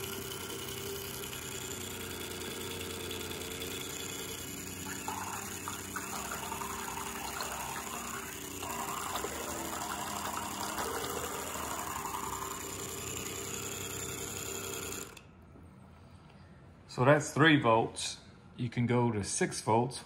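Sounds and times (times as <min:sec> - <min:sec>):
propeller churning water: 0:00.0 - 0:15.2
small electric motor hum: 0:00.0 - 0:15.3.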